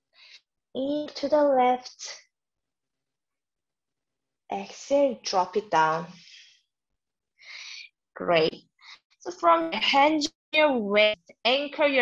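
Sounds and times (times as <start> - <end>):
woman speaking: 0.8 - 2.2, 4.5 - 6.4, 7.5 - 8.6, 9.3 - 12.0
short breath: 7.4 - 7.9.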